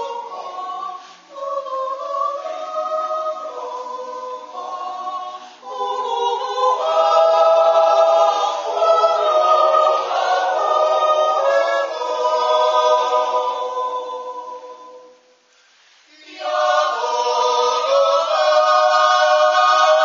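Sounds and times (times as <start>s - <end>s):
choir yodeling a cappella: 0.0s - 15.5s, 16.1s - 20.0s.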